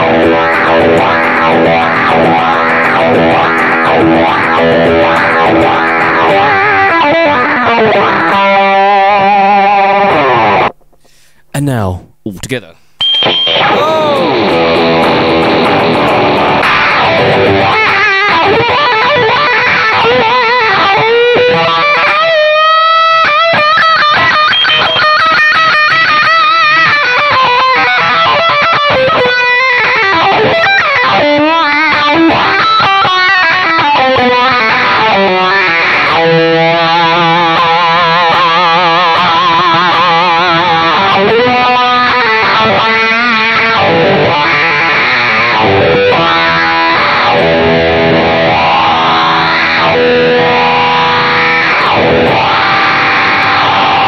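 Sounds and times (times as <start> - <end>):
distorted electric guitar: 0.0 - 54.0.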